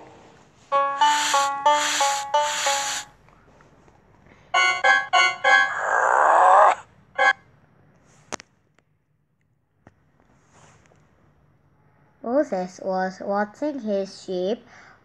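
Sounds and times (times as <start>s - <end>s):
cartoon musical sound effects: 0.7s - 3.1s, 4.6s - 7.4s.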